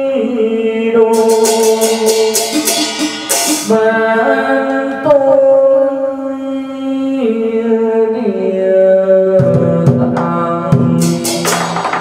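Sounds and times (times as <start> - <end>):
rattling hand percussion: 1.1 - 4.0, 10.2 - 12.0.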